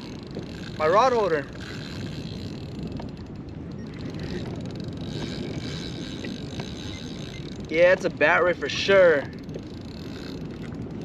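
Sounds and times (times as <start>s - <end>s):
water around a kayak: 0.0s - 11.0s
wind: 0.0s - 11.0s.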